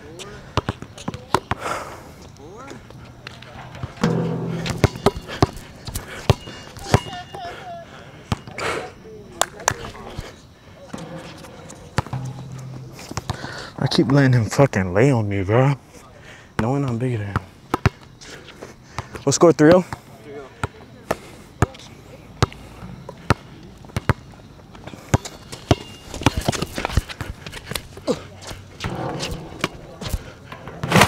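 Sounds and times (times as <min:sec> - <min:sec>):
basketball bouncing on hard court: 0:04.0 - 0:07.1
shoe squeak: 0:25.2 - 0:27.6, 0:28.5 - 0:30.2.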